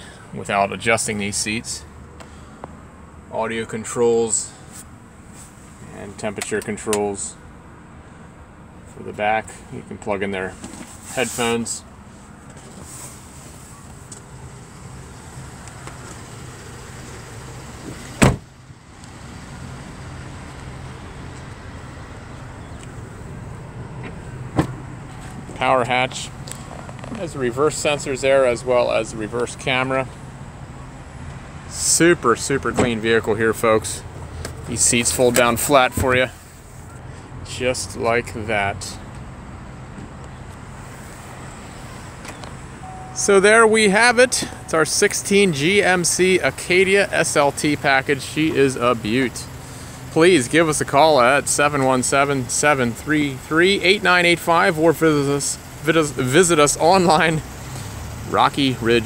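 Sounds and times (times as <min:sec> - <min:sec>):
car engine idling: 0:04.1 - 0:59.0
car door slamming: 0:17.8 - 0:18.6, 0:24.0 - 0:24.9.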